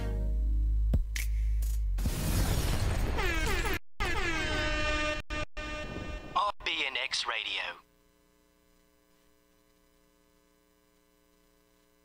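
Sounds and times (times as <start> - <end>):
buzzy horn-like tone sliding down: 3.2 - 6.4.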